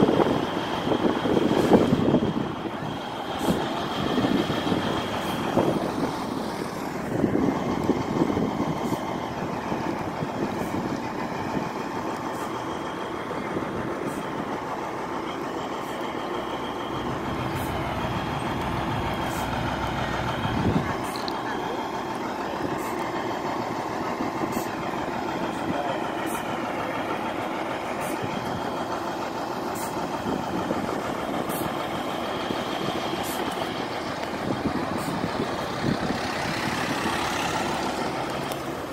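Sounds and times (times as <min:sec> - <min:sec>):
people chattering: 0:00.0 - 0:38.9
vehicle engines idling and passing: 0:00.0 - 0:38.9.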